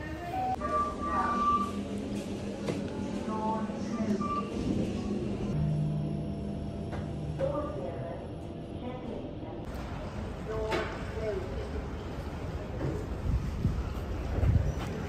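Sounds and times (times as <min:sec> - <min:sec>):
indistinct voices: 0:00.0 - 0:05.8
low steady hum: 0:00.5 - 0:12.2
background hubbub: 0:07.6 - 0:15.0.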